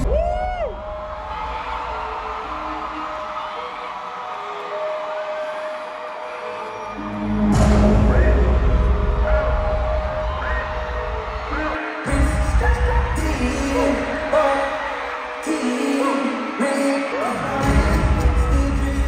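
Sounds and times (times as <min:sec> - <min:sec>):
live concert music: 0:00.0 - 0:19.0
heavy bass: 0:07.0 - 0:14.5, 0:17.5 - 0:19.0.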